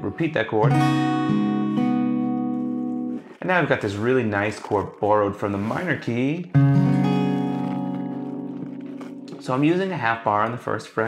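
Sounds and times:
acoustic guitar chord ringing: 0:00.1 - 0:03.2, 0:06.5 - 0:09.5.

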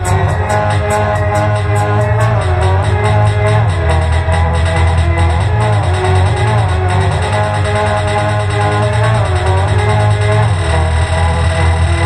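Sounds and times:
heavy bass drone: 0:00.0 - 0:12.0
layered hummed lines: 0:00.0 - 0:12.0.

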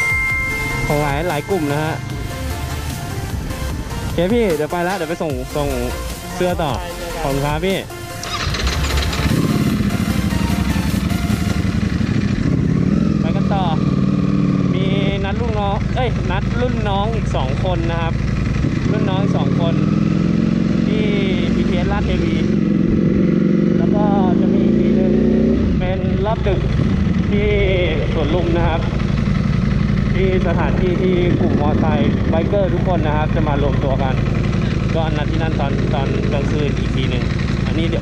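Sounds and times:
motorcycle engine accelerating: 0:00.0 - 0:38.0.

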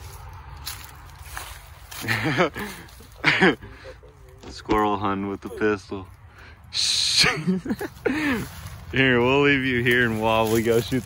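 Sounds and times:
person laughing: 0:02.0 - 0:04.0, 0:07.0 - 0:08.6.

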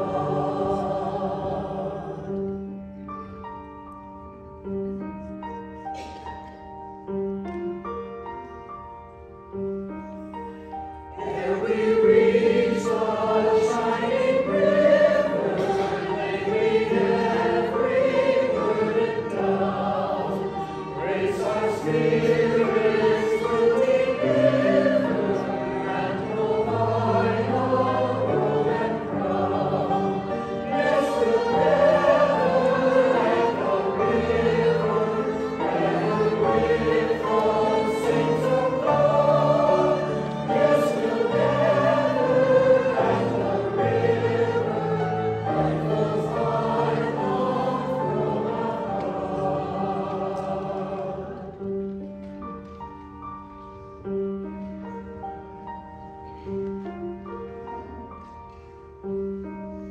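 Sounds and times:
choir singing a hymn: 0:00.0 - 0:03.7, 0:09.8 - 0:52.9
piano: 0:00.0 - 0:59.9
violin: 0:00.0 - 0:59.9.

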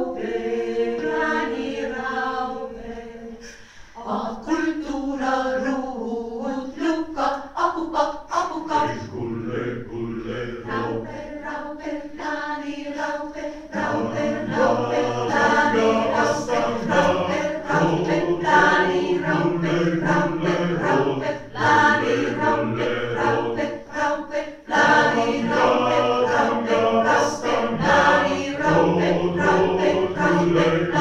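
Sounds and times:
mixed choir singing a cappella: 0:00.0 - 0:31.0.

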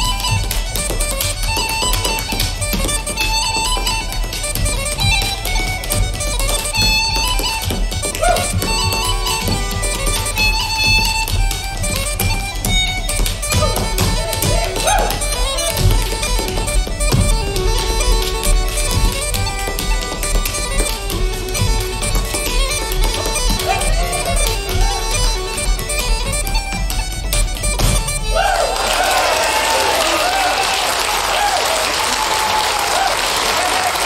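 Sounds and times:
bagpipes playing a fast reel: 0:00.0 - 0:30.6.

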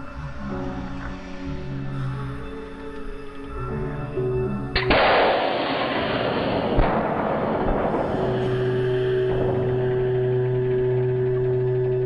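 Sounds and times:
loud bang with rushing noise: 0:04.8 - 0:10.8.

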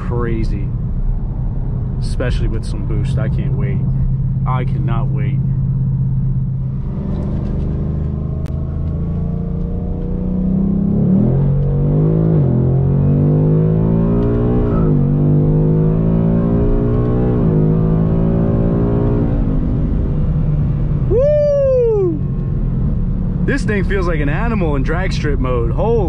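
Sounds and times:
car engine revving through gearshifts: 0:06.7 - 0:20.4.

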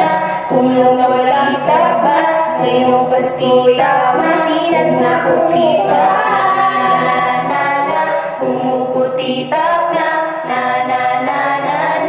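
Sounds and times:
voices singing in harmony: 0:00.0 - 0:12.0.

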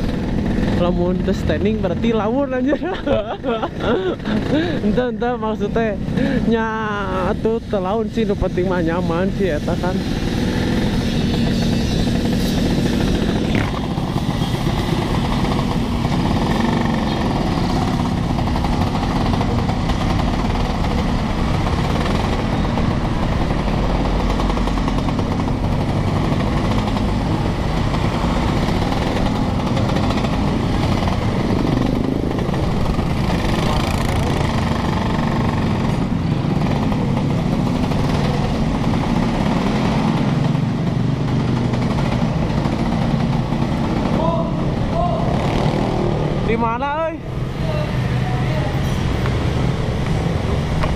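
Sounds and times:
motorcycle engines in traffic: 0:00.0 - 0:50.9
scooter engine running: 0:00.0 - 0:50.9.

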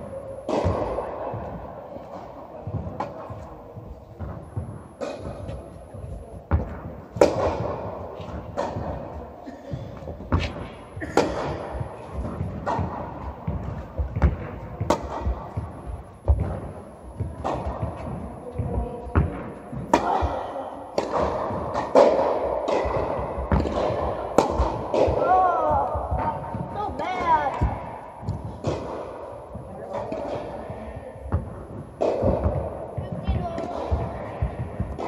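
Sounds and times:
tennis ball bounces: 0:00.4 - 0:09.3, 0:09.9 - 0:35.0
tennis racket strikes: 0:04.2 - 0:05.6, 0:19.2 - 0:30.6.

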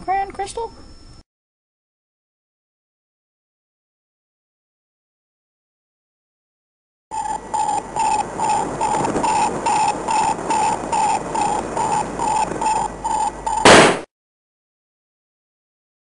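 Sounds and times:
pulsing electronic beeping tone: 0:07.1 - 0:13.8
loud noise burst: 0:07.2 - 0:14.1.

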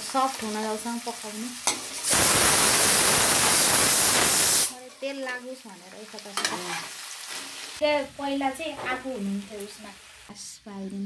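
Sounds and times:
mango frying in oil: 0:00.0 - 0:10.3
spatula scraping a pan: 0:06.4 - 0:07.8.

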